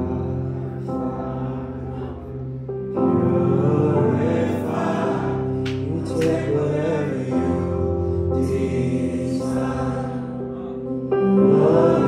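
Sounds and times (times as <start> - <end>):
group singing: 0.0 - 10.6, 11.2 - 12.0.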